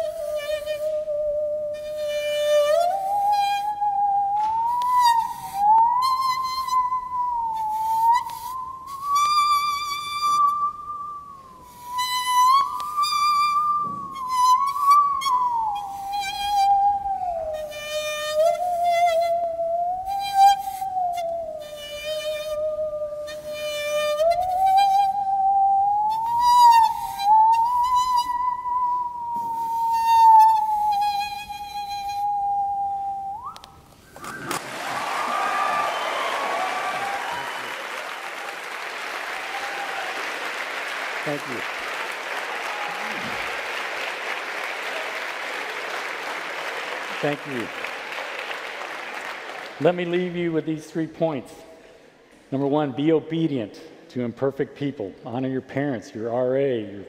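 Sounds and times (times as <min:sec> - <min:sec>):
musical saw playing slow melody: 0:00.0 - 0:34.2.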